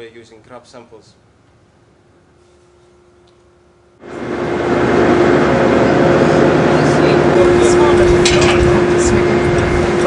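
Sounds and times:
machinery hum: 1.1 - 10.0.

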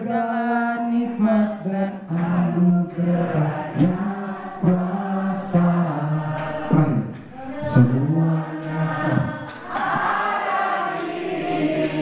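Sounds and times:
man singing into a microphone: 0.0 - 9.5.

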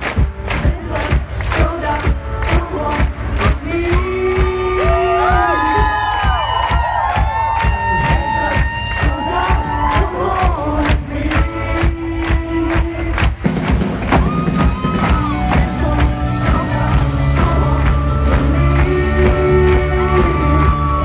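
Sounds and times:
drum beat: 0.0 - 21.0
person singing: 0.0 - 21.0
crowd cheering: 4.8 - 10.7, 13.8 - 21.0.

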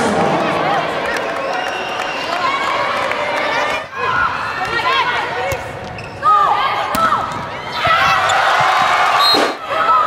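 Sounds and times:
crowd voices and shouts: 0.0 - 10.0
shoes squeaking on court: 5.8 - 6.2.

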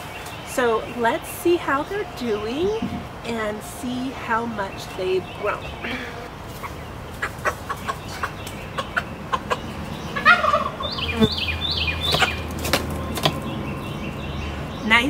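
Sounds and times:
chicken clucking and squawking: 6.0 - 11.4.

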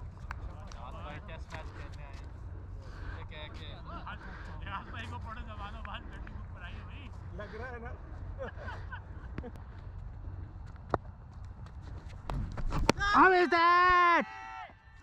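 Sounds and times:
crack of cricket ball: 10.9 - 13.0
camera thumps and rustling: 11.6 - 13.0.

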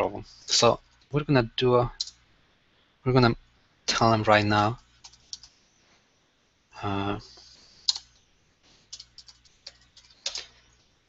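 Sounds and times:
typing on computer keyboard: 5.0 - 5.5, 7.9 - 8.2, 8.9 - 10.5.

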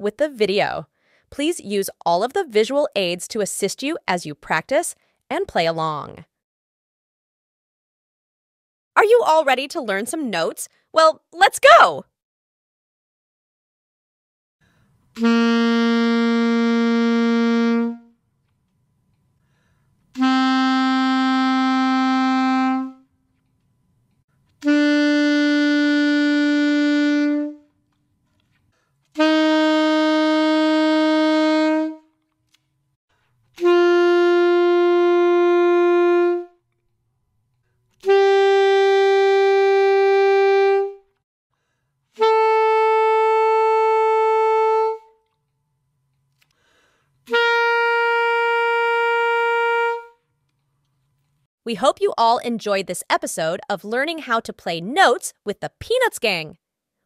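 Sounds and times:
alto saxophone playing a scale: 15.1 - 18.2, 20.2 - 23.1, 24.6 - 27.8, 29.1 - 32.2, 33.6 - 36.6, 38.0 - 41.2, 42.2 - 45.2, 47.2 - 50.3.

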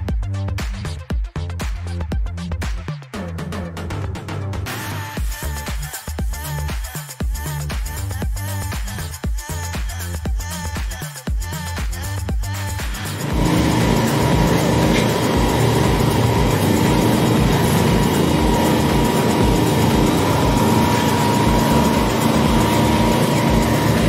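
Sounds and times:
electronic dance music: 0.0 - 24.0
fire hoses spraying water: 12.9 - 24.0.

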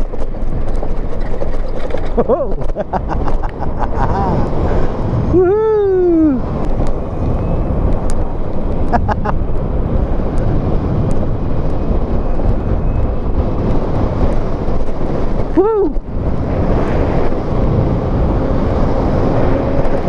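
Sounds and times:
small motorbike road noise: 0.0 - 20.0
wind on microphone: 0.0 - 20.0.

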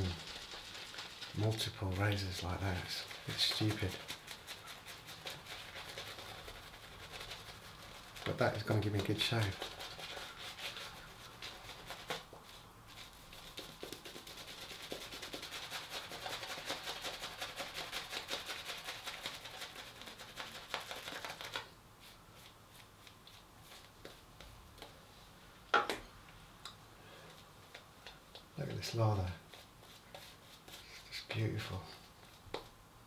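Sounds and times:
shaving brush swishing on face: 0.0 - 24.7, 27.6 - 32.7.

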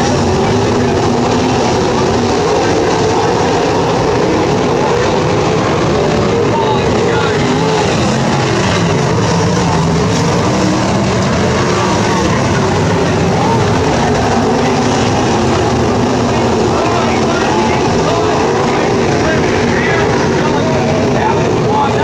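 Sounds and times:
racing car engines revving: 0.0 - 22.0.

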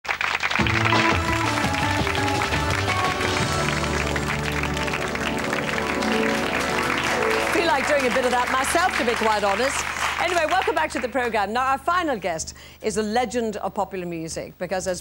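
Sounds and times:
television theme music: 0.5 - 11.2.

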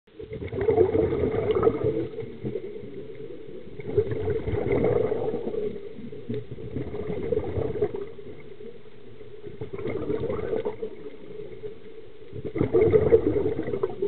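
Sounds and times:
regulator exhaust bubbles: 0.1 - 3.0, 3.8 - 8.6, 9.4 - 11.6, 12.3 - 14.0
underwater water noise: 0.1 - 14.0.

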